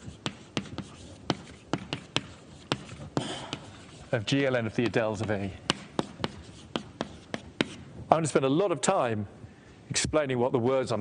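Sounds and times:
chalk tapping on blackboard: 0.0 - 7.8.

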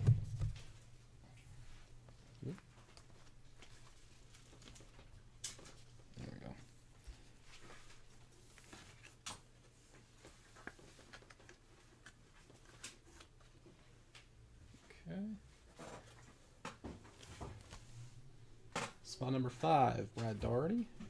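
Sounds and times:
faint room hum: 0.0 - 21.0
plastic card sleeve rustling: 7.5 - 13.5.

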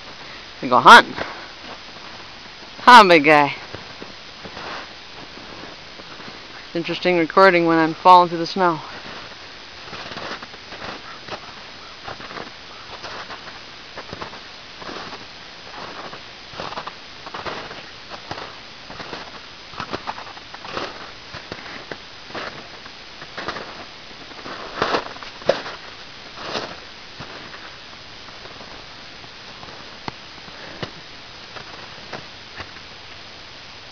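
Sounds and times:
footsteps crunching through snow: 3.6 - 32.9.

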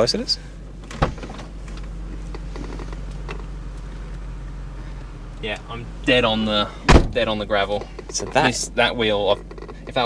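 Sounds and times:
car engine idling: 0.0 - 10.0
car door latch clicking: 0.8 - 1.5, 6.9 - 7.2.

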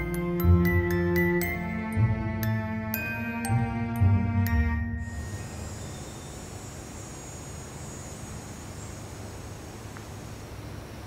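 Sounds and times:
background hiss: 0.0 - 11.0
cicada buzzing: 5.0 - 11.0.

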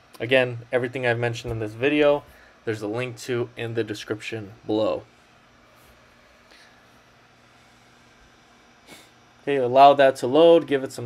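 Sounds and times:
faint low hum and hiss: 0.0 - 11.0
short breath: 2.3 - 2.6, 6.5 - 7.9, 8.8 - 9.2.

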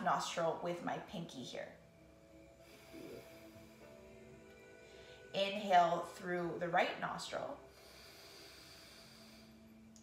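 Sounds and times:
soft inhale through nostril: 2.6 - 4.0, 7.7 - 9.8.

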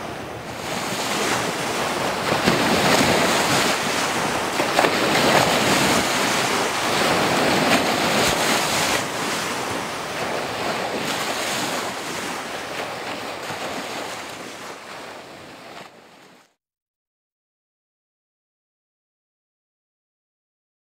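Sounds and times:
wind buffeting microphone: 0.0 - 16.0
river water rushing: 0.0 - 16.2.

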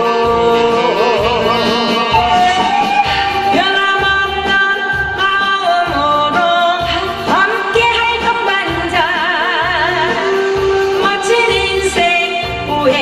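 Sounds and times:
backing music with bass beat: 0.0 - 13.0
woman singing into microphone: 0.0 - 13.0.

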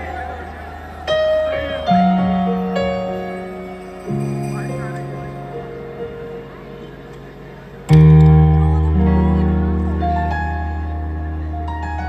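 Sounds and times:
band chord with deep bass: 4.9 - 12.0.

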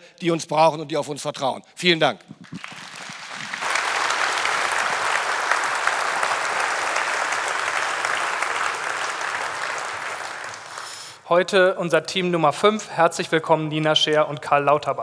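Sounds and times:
large audience applauding: 2.4 - 11.2.

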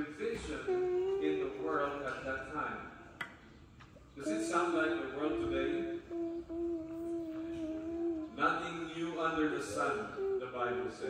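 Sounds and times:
person humming: 0.0 - 2.3, 4.2 - 8.9, 9.5 - 11.0.

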